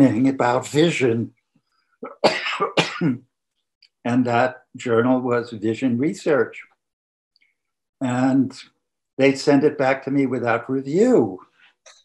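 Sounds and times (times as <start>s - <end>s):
elderly man coughing: 2.0s - 3.2s.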